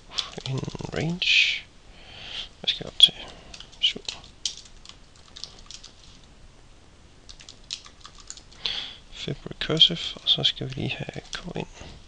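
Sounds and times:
typing on computer keyboard: 3.5 - 6.0, 7.3 - 8.5.

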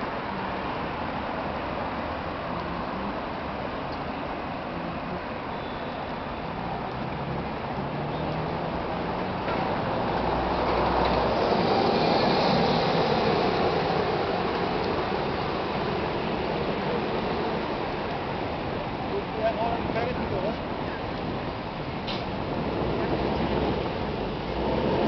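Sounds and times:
background traffic noise: 0.0 - 25.0
bus passing by: 0.0 - 25.0.

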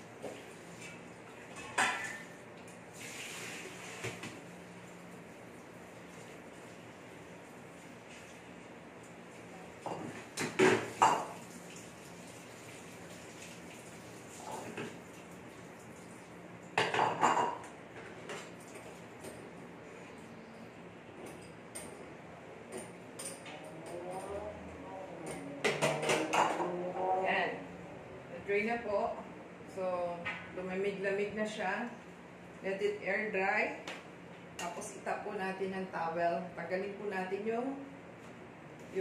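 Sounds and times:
dishes and metal kitchenware clattering: 0.8 - 2.4, 9.8 - 11.4, 16.7 - 19.4, 25.2 - 26.8.

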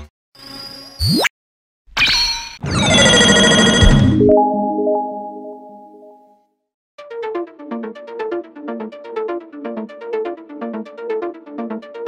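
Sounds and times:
soft held chord: 4.2 - 6.4.

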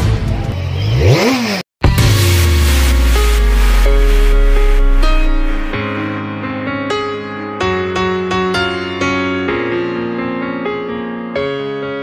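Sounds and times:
music: 0.0 - 0.8, 1.8 - 12.0
engine revving: 0.0 - 5.8.

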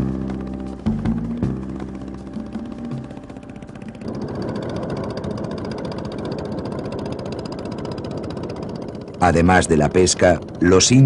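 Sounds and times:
music: 0.0 - 4.1
motorboat engine running: 0.0 - 11.0.

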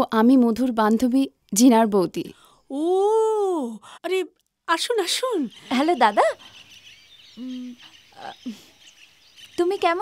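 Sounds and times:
faint birdsong chirping: 0.0 - 10.0.

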